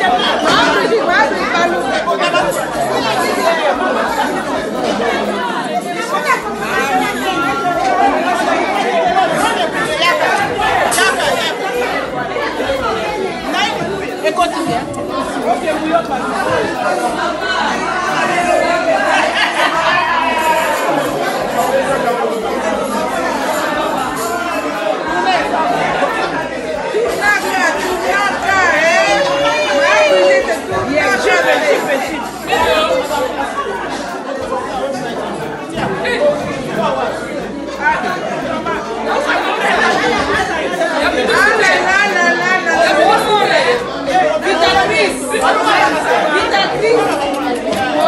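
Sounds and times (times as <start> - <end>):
group of people chatting: 0.0 - 48.0.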